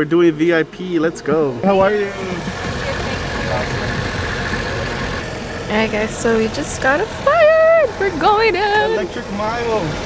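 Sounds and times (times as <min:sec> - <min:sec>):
car engines idling: 0:00.0 - 0:10.0.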